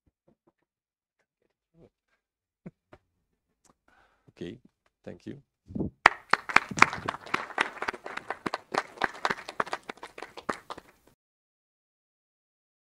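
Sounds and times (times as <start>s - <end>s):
audience applause: 6.0s - 11.1s.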